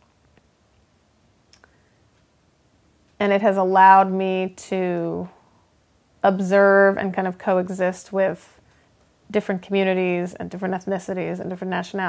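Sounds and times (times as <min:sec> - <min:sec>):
faint clicks: 0:01.5 - 0:02.3.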